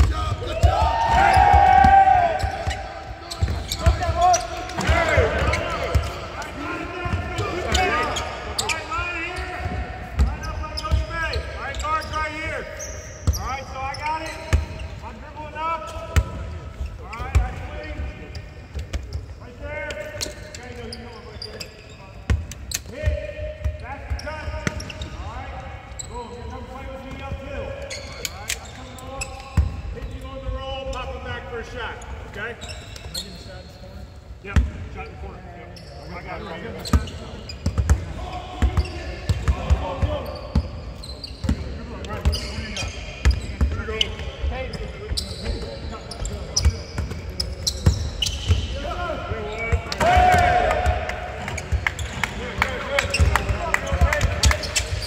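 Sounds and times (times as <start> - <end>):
players calling out: 0.0 - 16.0.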